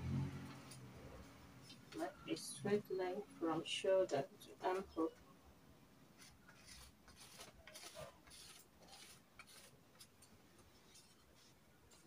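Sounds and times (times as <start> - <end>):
chalk scratching on fabric: 6.2 - 10.1, 10.8 - 12.0.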